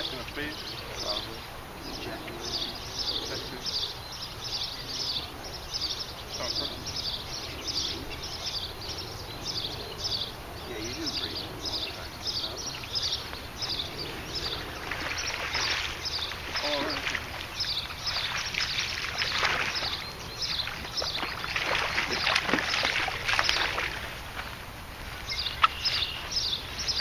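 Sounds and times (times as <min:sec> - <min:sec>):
water splashing and sloshing: 0:12.5 - 0:27.0
high chirp: 0:25.2 - 0:27.0.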